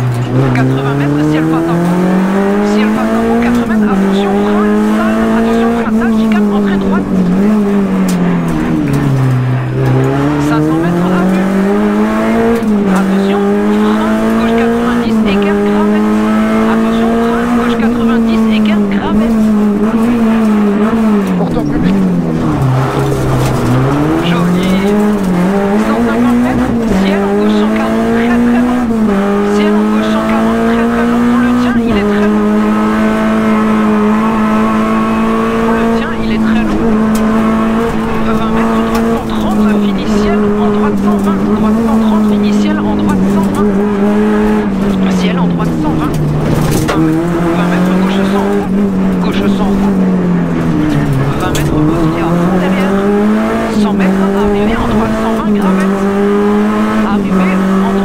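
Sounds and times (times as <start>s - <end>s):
rally car engine at high revs: 0.0s - 58.0s.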